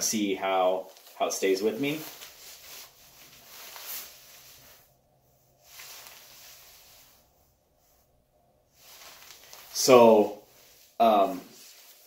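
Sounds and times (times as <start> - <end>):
jacket fabric rustling: 0.0 - 12.0.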